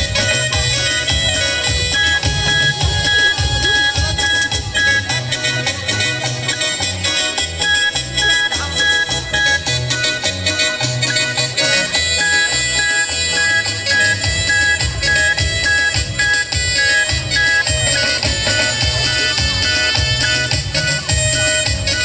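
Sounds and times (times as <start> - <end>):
band playing dance music: 0.0 - 22.0.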